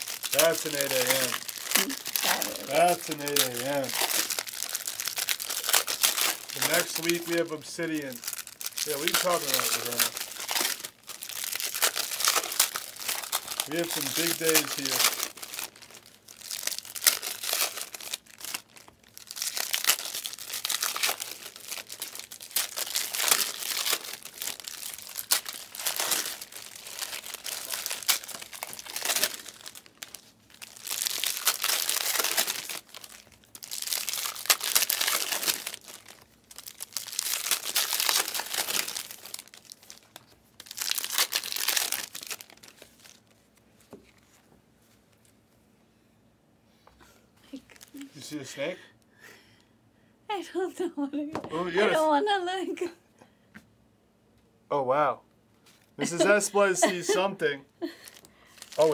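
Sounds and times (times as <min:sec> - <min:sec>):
wrappers torn open and crumpled: 0:00.0 - 0:44.2, 0:47.5 - 0:48.4, 0:57.9 - 0:58.9.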